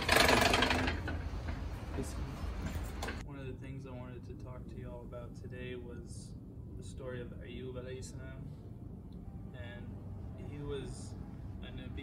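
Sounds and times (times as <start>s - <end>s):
door rattling scrape: 0.0s - 3.2s
steady low hum: 0.0s - 12.0s.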